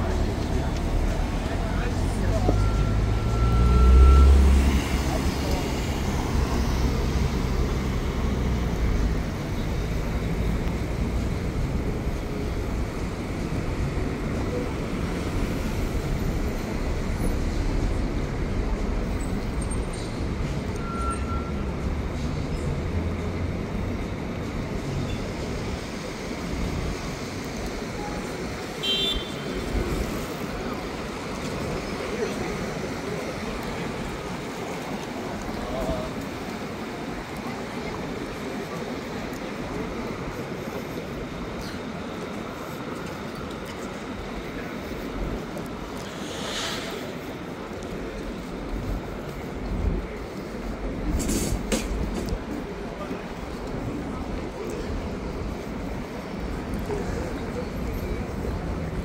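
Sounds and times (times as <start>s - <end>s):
cars passing: 0.0s - 59.0s
voices of passers-by: 0.0s - 59.0s
vehicle rumbling past: 46.0s - 47.7s.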